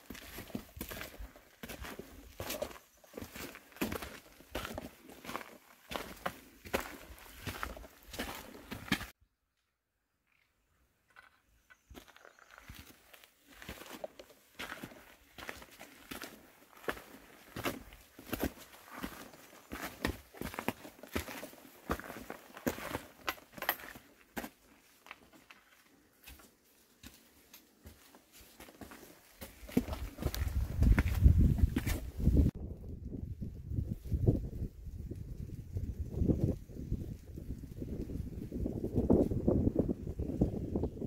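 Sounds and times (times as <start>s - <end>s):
footsteps on rocky dirt trail: 0.0s - 9.2s, 10.2s - 32.6s.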